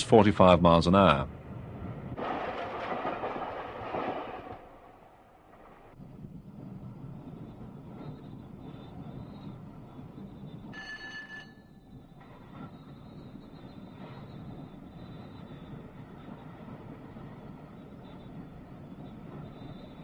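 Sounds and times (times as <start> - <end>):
wheels rumbling on rail: 0.0 - 20.0
rushing noise: 0.8 - 10.6.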